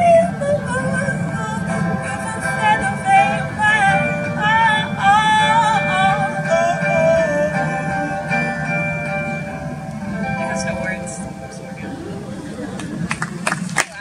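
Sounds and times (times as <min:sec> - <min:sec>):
woman singing into microphone: 0:00.0 - 0:08.5
sustained chord: 0:00.0 - 0:13.6.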